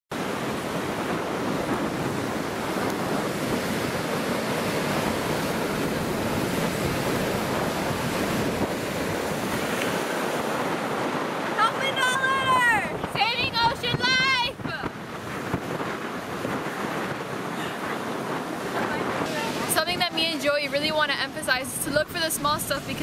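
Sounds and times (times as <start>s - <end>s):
ocean surf breaking: 0.1s - 23.0s
wind buffeting microphone: 0.1s - 23.0s
girl's voice: 11.6s - 14.9s.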